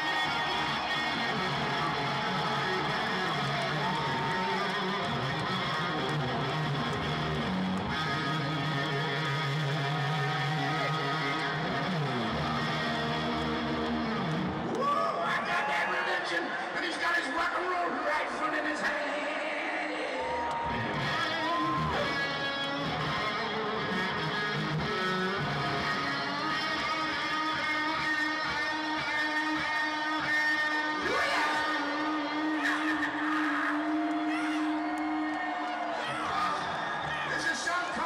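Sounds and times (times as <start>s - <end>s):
electric guitar solo: 0.0s - 16.8s, 20.3s - 38.0s.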